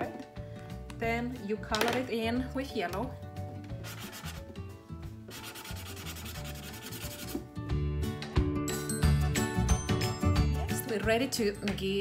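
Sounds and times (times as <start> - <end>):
felt-tip marker scribbling on paper: 3.8 - 4.4, 5.3 - 7.4.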